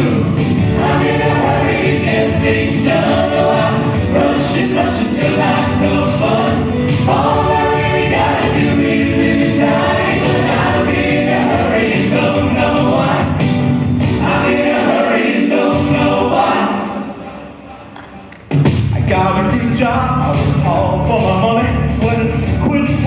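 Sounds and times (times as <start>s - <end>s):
choir singing in harmony: 0.0s - 18.3s
musical accompaniment: 0.0s - 23.0s.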